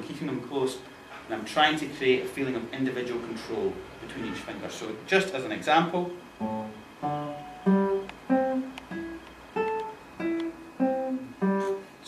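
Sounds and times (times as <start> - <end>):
classical guitar plucked notes: 6.4 - 11.9.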